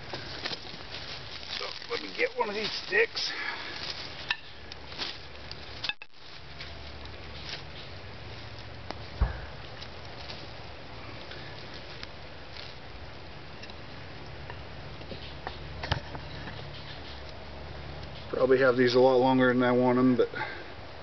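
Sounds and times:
wooden sticks clicking and knocking: 0:03.8 - 0:04.8.

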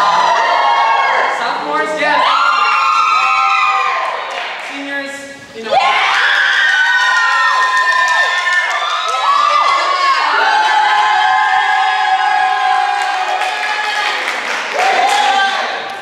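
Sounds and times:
audience cheering: 0:05.8 - 0:16.0.

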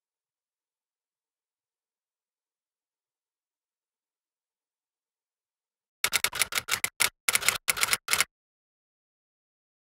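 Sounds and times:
sharp clicks: 0:06.0 - 0:08.3.

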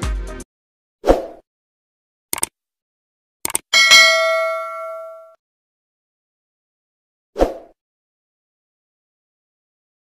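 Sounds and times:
bright bell chime: 0:03.8 - 0:05.4.

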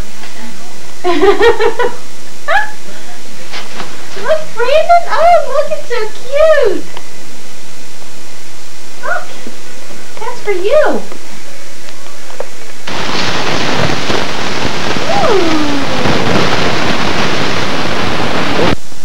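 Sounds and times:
loud steady rushing noise: 0:06.9 - 0:19.0.

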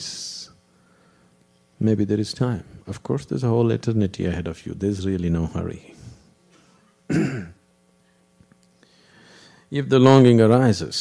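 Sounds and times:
man clearing throat: 0:07.1 - 0:07.7.

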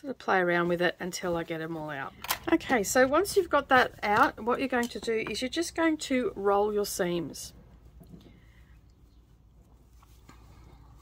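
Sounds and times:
fabric rustling: 0:00.0 - 0:11.0.

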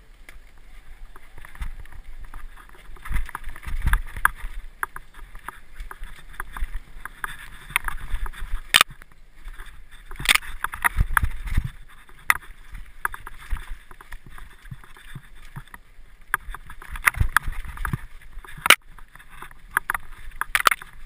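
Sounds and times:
mountain bike rattling on dirt trail: 0:00.0 - 0:21.0.

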